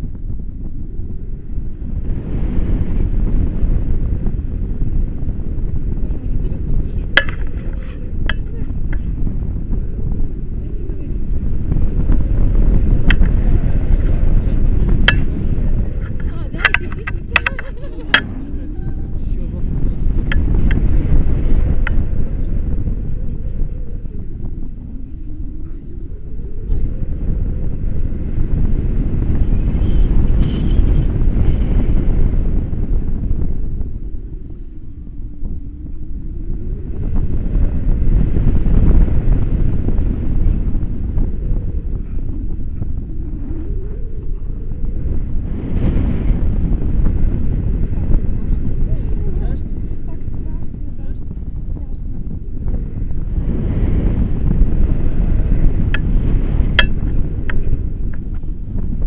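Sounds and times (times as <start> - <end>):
wind rumbling on microphone: 0.0 - 59.0.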